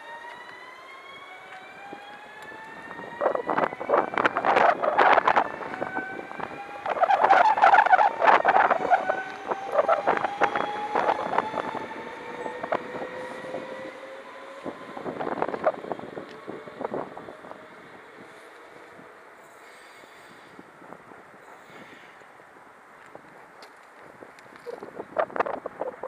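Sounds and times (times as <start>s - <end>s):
electric train motor whine: 0.0s - 19.5s.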